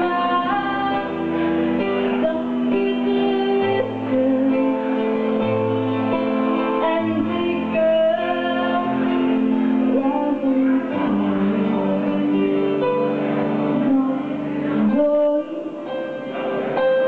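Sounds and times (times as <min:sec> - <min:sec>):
woman singing into a microphone: 0:00.0 - 0:16.8
guitar: 0:00.0 - 0:17.0.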